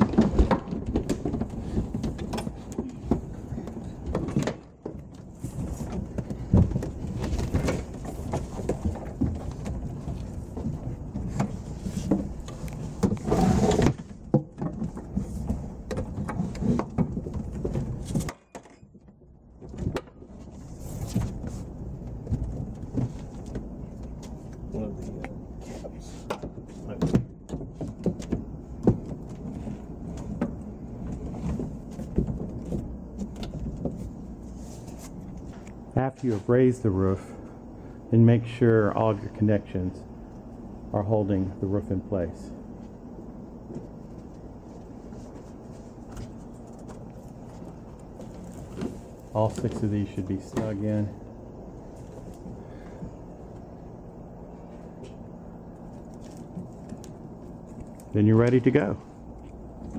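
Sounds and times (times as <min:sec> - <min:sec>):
knocks and clatter: 0:00.0 - 0:20.5.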